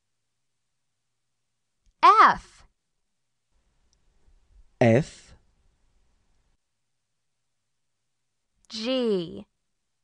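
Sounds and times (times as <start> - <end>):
person saying a letter: 8.7 - 9.4.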